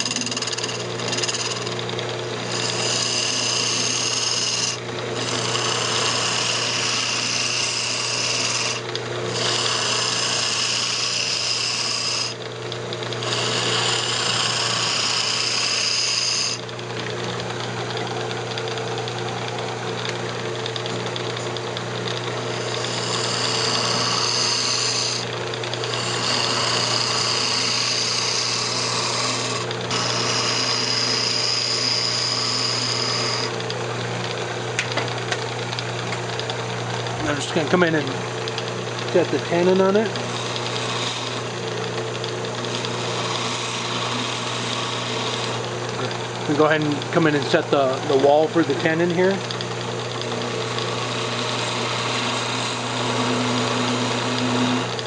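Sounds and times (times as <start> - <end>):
turning tool cutting wood: 0.0 - 55.0
wood lathe humming: 0.0 - 55.0.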